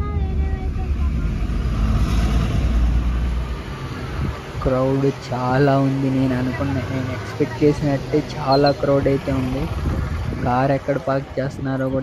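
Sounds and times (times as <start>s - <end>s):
vehicle engine and road rumble: 0.0s - 12.0s.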